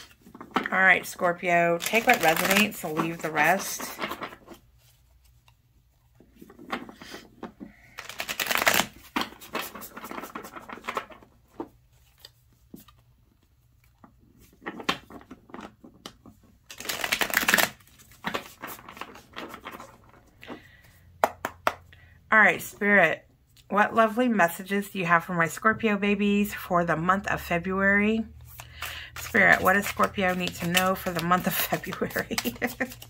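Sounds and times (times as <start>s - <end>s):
playing cards shuffling: 0.0s - 21.6s, 28.4s - 33.0s.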